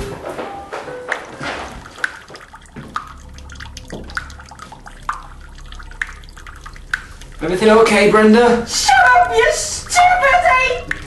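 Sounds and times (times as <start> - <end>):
water dripping and trickling: 0.8 - 11.0
sharp water drips: 1.1 - 11.0.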